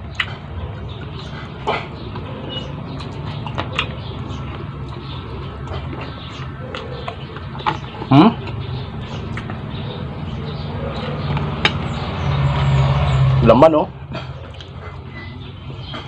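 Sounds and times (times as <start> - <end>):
chewing and lip-smacking: 0.0 - 13.3, 14.2 - 16.0.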